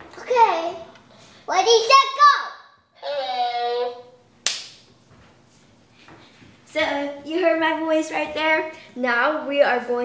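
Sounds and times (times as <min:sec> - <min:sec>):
sharp crack: 0:04.4 - 0:04.9.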